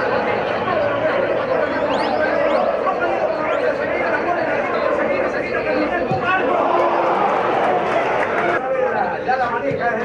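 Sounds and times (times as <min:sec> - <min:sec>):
background noise: 0:00.0 - 0:10.0.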